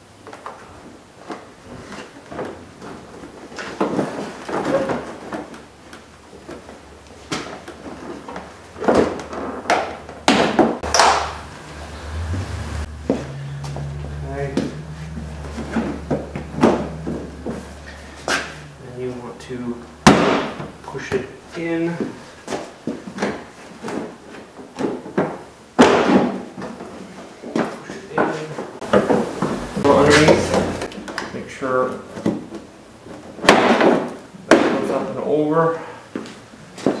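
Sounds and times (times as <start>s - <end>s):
low steady hum: 10.8s - 21.6s.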